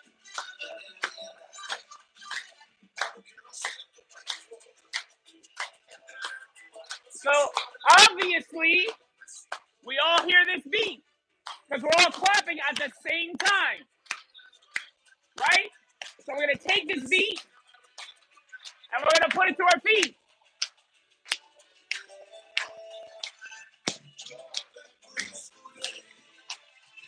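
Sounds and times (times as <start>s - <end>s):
salsa music from loudspeaker: 0.0s - 11.0s, 11.7s - 14.8s, 15.4s - 15.7s, 16.3s - 20.2s
people clapping on the beat: 0.3s - 26.7s.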